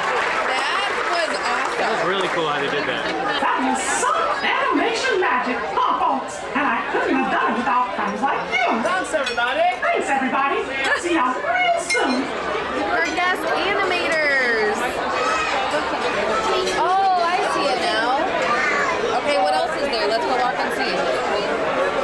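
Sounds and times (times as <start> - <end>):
diners chattering: 0.0 - 22.0.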